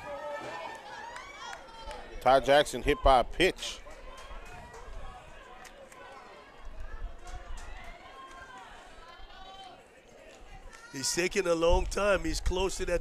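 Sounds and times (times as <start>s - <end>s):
faint crowd chatter: 0.0s - 13.0s.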